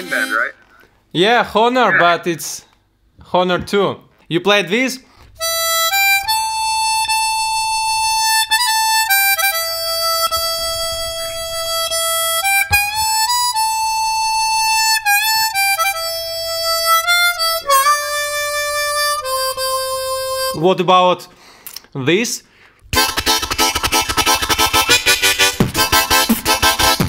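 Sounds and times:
harmonica melody: 0.0s - 0.8s, 5.4s - 21.1s, 22.9s - 27.0s.

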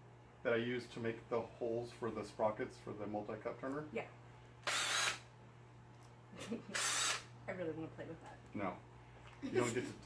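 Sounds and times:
cordless drill spinning: 4.6s - 5.2s, 6.7s - 7.3s.

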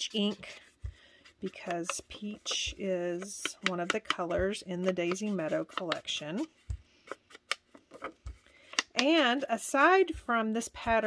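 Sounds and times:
sponge dauber scratching paper: 0.0s - 6.6s, 9.0s - 11.0s.

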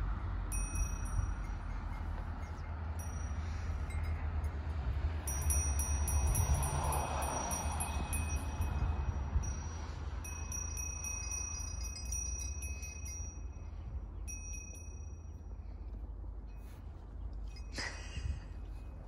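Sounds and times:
steady low rumble: 0.0s - 19.0s
high ringing chime tones: 0.5s - 4.2s.

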